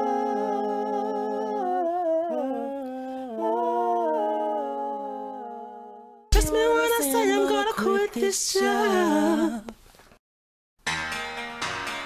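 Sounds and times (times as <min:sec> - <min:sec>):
hummed vocal harmonies: 0:00.0 - 0:09.8.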